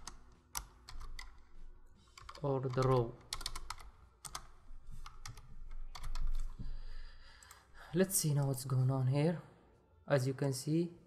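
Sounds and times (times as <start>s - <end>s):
computer keyboard typing: 0.0s - 1.5s, 2.1s - 6.6s.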